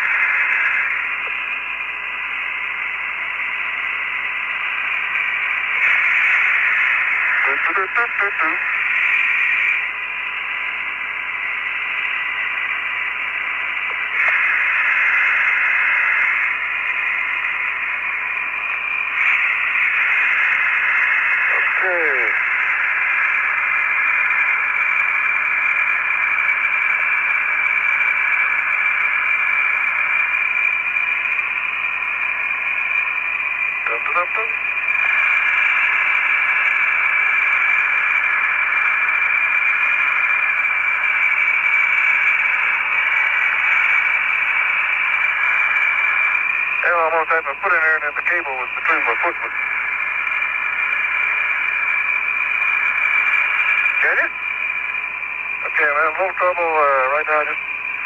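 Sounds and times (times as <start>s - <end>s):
radio hiss: 0.0s - 58.0s
garbled radio voice: 7.3s - 9.6s, 21.4s - 22.4s, 33.8s - 34.6s, 46.8s - 49.6s, 54.0s - 54.4s, 55.6s - 57.6s.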